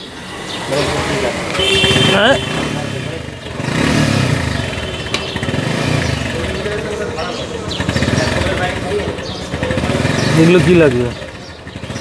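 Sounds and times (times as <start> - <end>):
street and workshop noise: 0.0 - 12.0
motorcycle engine running: 0.3 - 12.0.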